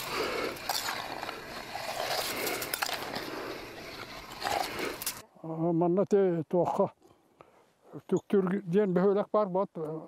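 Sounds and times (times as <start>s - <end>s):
ice slush crunching and scraping: 0.0s - 5.2s.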